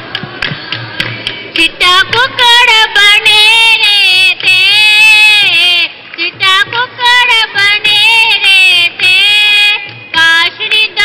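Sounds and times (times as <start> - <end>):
woman singing folk melody: 1.5 - 11.0.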